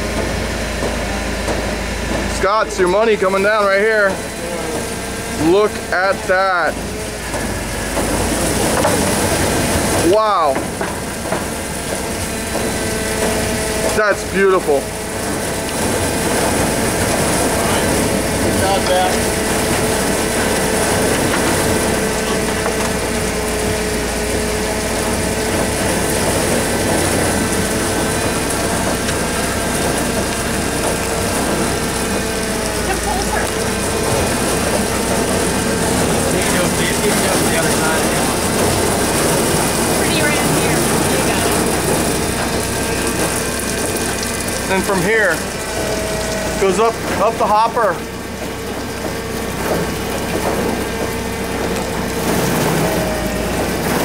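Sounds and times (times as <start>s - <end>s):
grapes tipping into hopper: 0.0s - 54.0s
machinery running: 0.0s - 54.0s.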